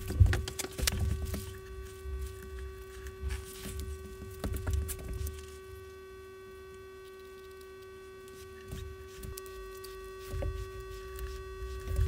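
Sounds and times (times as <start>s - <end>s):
electrical hum with tones: 0.0s - 12.0s.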